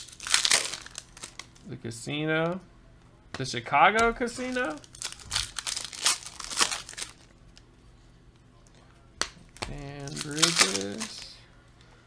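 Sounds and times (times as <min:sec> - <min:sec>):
foil pack crinkling and tearing: 0:00.0 - 0:01.7, 0:04.4 - 0:07.3, 0:09.8 - 0:11.4.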